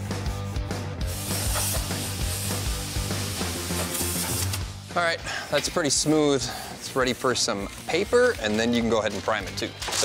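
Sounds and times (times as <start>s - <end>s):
background music with bass: 0.0s - 10.0s
sanding on metal hood: 1.0s - 4.5s
steady hiss: 1.0s - 7.8s.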